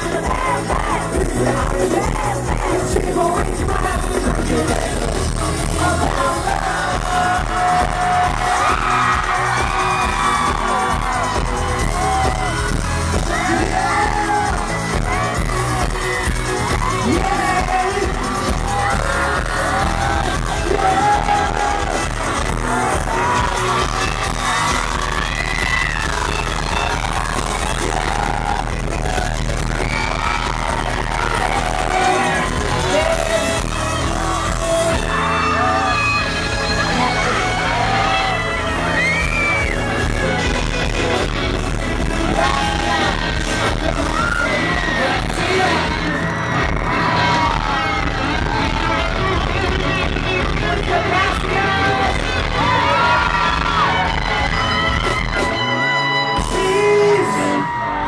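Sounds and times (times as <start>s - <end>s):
voices singing: 0.0s - 9.0s, 41.8s - 54.0s
fans screaming and cheering: 0.0s - 58.0s
pop concert music over loudspeakers: 0.0s - 58.0s.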